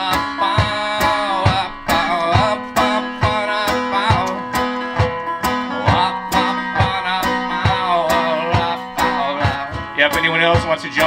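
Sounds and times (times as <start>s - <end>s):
banjo picking: 0.0s - 11.0s.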